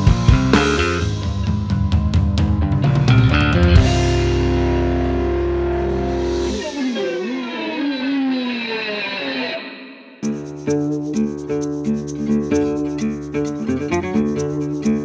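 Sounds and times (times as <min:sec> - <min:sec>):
drum fill: 0:00.0 - 0:07.8
bass guitar: 0:00.0 - 0:08.5, 0:10.2 - 0:15.0.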